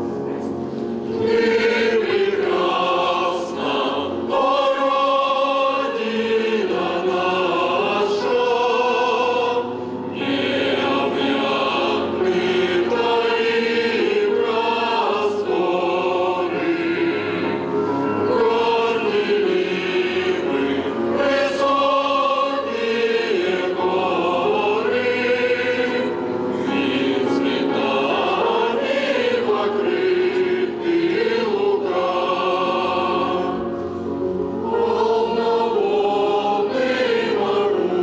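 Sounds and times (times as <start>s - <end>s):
mixed choir singing: 0.0s - 38.0s.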